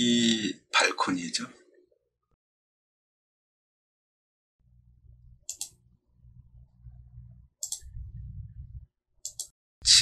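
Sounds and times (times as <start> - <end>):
faint low rumble: 4.7 - 8.9
computer mouse clicking: 5.4 - 5.8, 7.6 - 8.0, 9.2 - 9.6.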